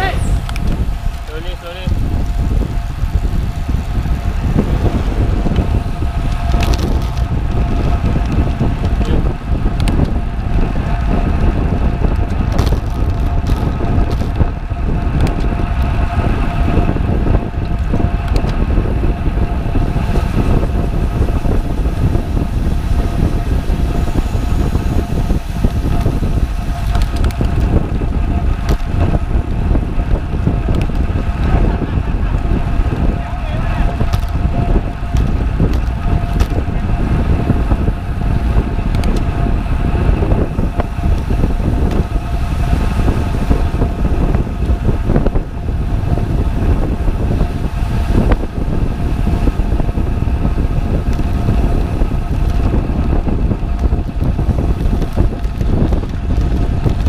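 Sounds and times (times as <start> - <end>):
bike tyres on asphalt: 0.0 - 57.0
wind rushing over microphone: 0.0 - 57.0.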